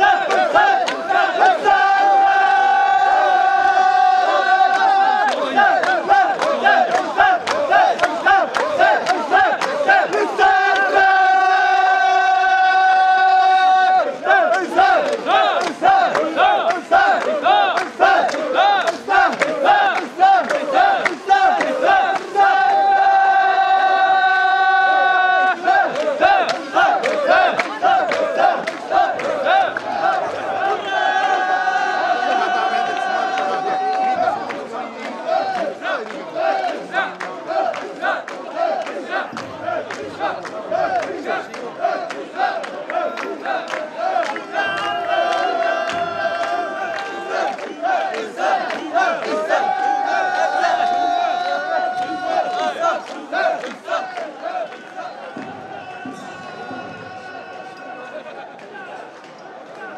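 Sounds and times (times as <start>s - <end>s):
people shouting a rhythmic chant: 0.0s - 59.1s.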